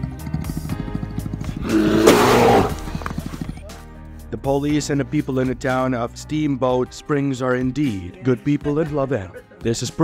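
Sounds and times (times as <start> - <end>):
background music with steady beat: 0.0 - 10.0
bear call: 1.6 - 2.8.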